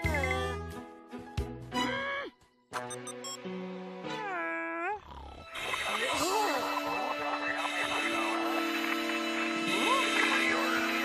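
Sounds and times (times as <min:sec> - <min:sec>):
cartoon character voice: 0:00.0 - 0:00.7, 0:06.0 - 0:08.1.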